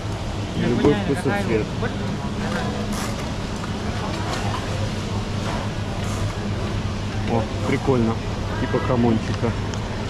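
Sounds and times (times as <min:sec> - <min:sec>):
refrigerator and ventilation hum: 0:00.0 - 0:10.0
faint background voices: 0:00.4 - 0:10.0.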